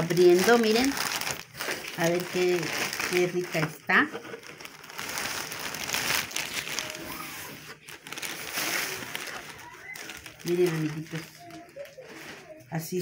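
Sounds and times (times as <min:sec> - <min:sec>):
plastic bag rustling: 0:00.0 - 0:13.0.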